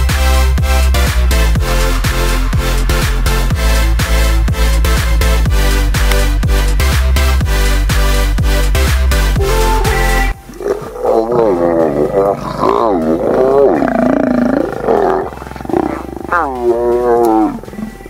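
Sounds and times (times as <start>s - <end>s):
lions growling: 10.0s - 18.0s.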